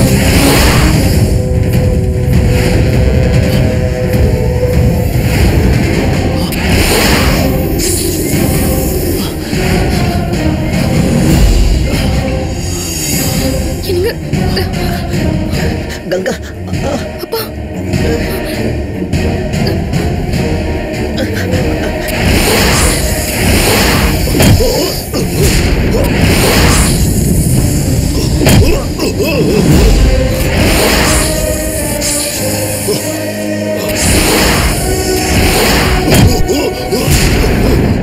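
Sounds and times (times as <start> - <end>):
background music: 0.0 - 38.0
dramatic background score: 0.0 - 38.0
whooshes: 22.0 - 24.6, 29.8 - 32.7, 33.8 - 36.3.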